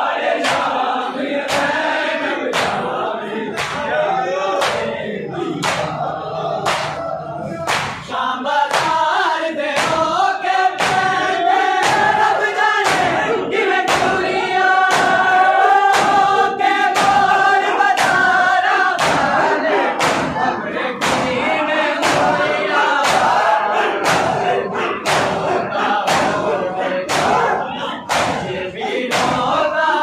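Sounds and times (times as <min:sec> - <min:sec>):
crowd of men chanting: 0:00.0 - 0:30.0
chest slaps: 0:03.6 - 0:03.9, 0:05.6 - 0:05.9, 0:06.7 - 0:07.0, 0:07.7 - 0:08.1, 0:20.0 - 0:20.4, 0:28.1 - 0:28.5.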